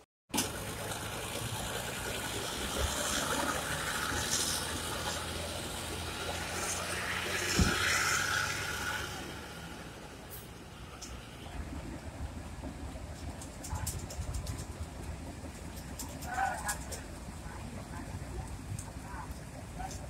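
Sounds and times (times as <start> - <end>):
diesel engines idling: 0.3 - 20.0
steady rushing noise: 0.6 - 20.0.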